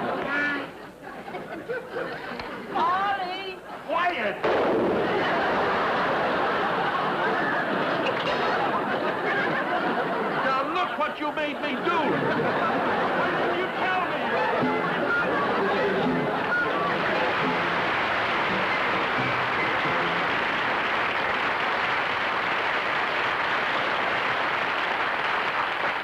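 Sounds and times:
audience laughing: 0.0s - 2.8s, 3.7s - 21.8s
audience applauding: 4.9s - 26.0s
band music: 12.9s - 20.9s.

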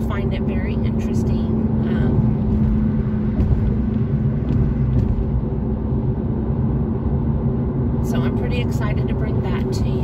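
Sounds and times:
car cabin road rumble: 0.0s - 10.0s
steady hum: 0.0s - 10.0s.

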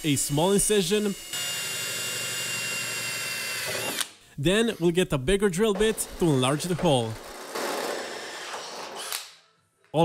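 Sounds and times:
cordless drill drilling metal: 0.2s - 5.0s, 5.7s - 9.2s.

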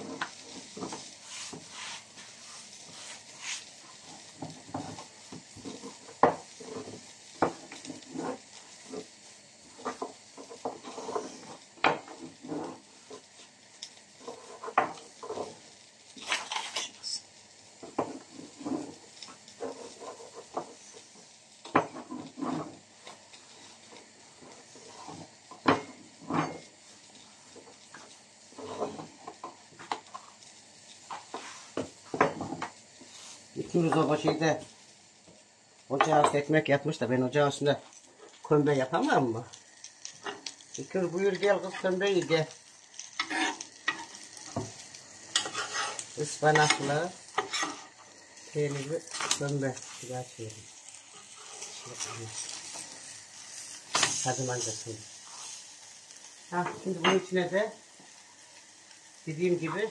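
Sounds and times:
soft rubbing of dough: 0.0s - 17.2s, 18.1s - 29.2s, 30.3s - 32.1s, 32.9s - 35.0s, 40.7s - 59.9s.

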